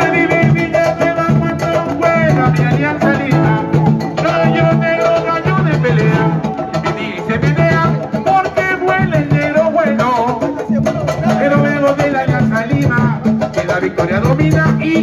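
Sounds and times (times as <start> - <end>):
latin band over loudspeaker: 0.0 - 15.0.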